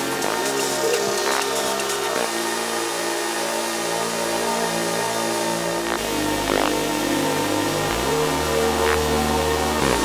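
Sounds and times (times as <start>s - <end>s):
droning synth chords: 0.0s - 10.0s.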